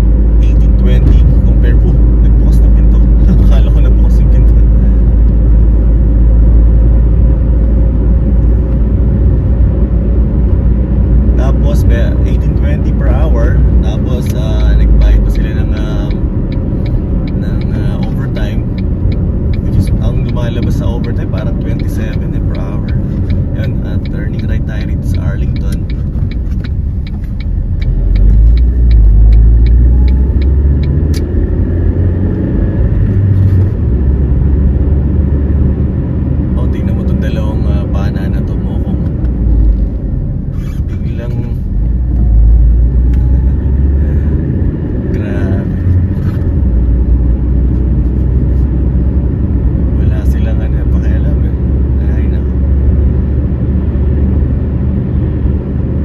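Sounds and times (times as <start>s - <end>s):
car interior road and engine rumble: 0.0s - 56.0s.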